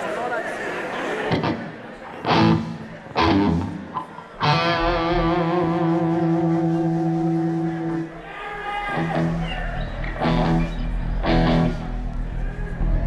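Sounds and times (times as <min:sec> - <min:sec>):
electric guitar chords: 0:01.3 - 0:08.1, 0:08.9 - 0:12.2.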